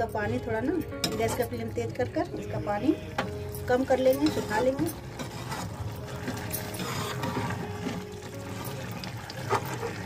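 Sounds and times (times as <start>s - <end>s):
greens bubbling at a hard boil: 3.4s - 10.0s.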